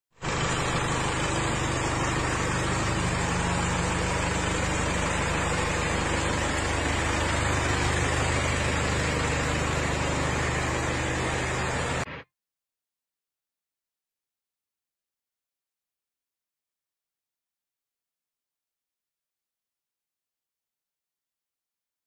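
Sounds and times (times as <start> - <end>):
diesel engine idling: 0.2 - 12.1.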